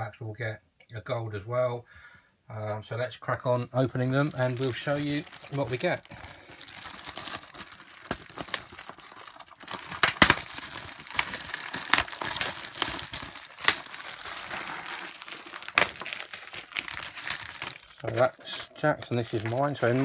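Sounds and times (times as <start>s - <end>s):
plastic wrappers crinkling: 3.8s - 20.0s
packet ripping: 4.0s - 20.0s.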